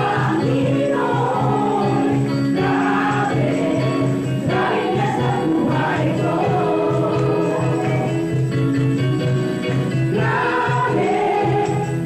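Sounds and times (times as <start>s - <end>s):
gospel choir singing: 0.0s - 12.0s.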